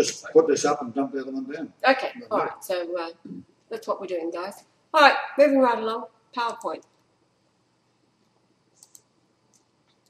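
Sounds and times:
computer mouse clicks: 0:08.8 - 0:10.0.

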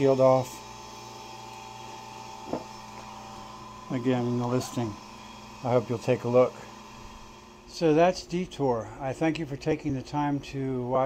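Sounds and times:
low hum of machinery: 0:00.0 - 0:11.0.

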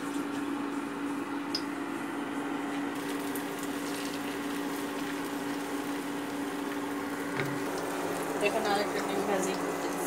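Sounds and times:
cooktop hum: 0:00.0 - 0:10.0
omelette sizzling in oil: 0:03.0 - 0:10.0.

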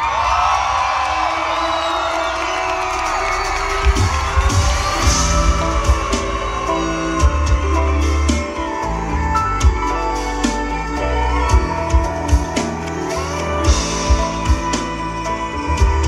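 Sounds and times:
audience cheering and whooping: 0:00.0 - 0:16.0
live band playing pop music: 0:01.2 - 0:16.0.

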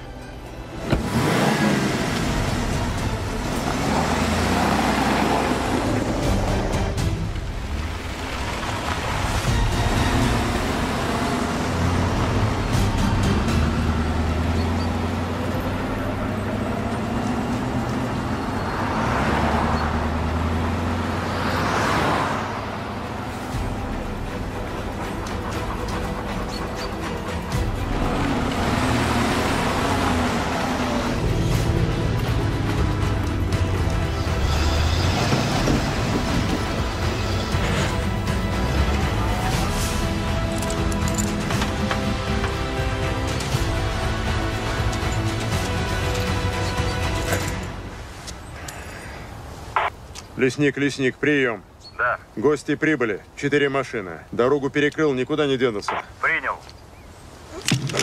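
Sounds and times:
film score music: 0:00.0 - 0:58.0
off-road vehicle engines passing: 0:00.0 - 0:58.0.

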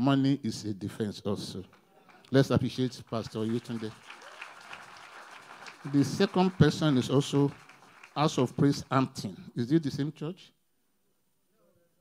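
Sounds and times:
audience applauding: 0:02.1 - 0:09.1.

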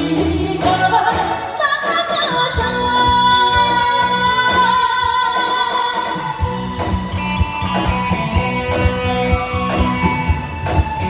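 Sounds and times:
woman singing into microphone: 0:00.0 - 0:06.5
live band with drums: 0:00.0 - 0:11.0.

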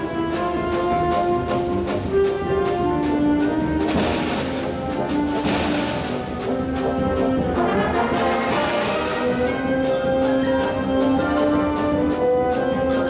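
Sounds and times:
concert wind band playing: 0:00.0 - 0:13.0.

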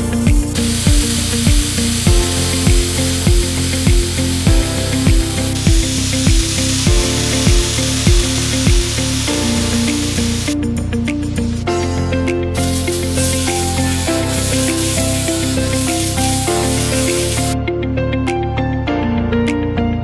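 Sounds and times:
laser high hiss: 0:00.0 - 0:10.6, 0:12.6 - 0:17.6
background music with beat: 0:00.0 - 0:20.0.

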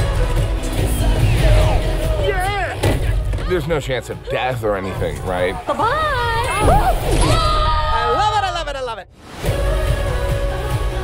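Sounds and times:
trailer music: 0:00.0 - 0:11.0.

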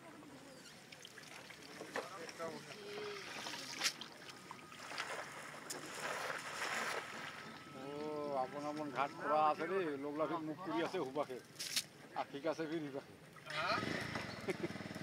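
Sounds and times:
wading through shallow water: 0:00.1 - 0:09.7.

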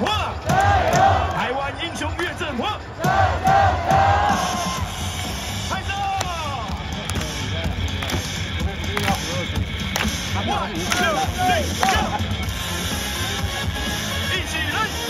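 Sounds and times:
cheer music over sound system: 0:00.0 - 0:15.0.

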